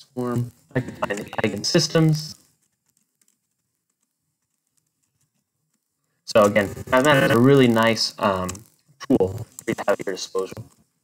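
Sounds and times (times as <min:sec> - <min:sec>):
keyboard typing: 0:02.6 - 0:05.4.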